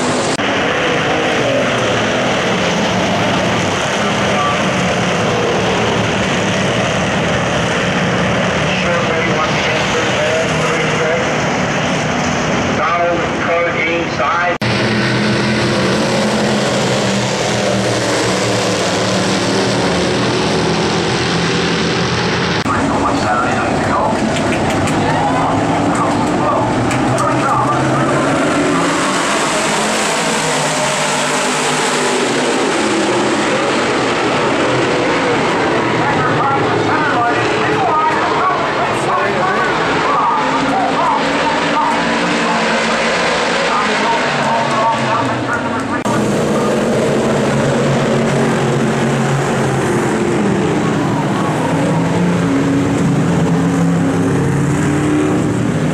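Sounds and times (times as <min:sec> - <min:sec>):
race car engines passing: 0:00.0 - 0:55.9.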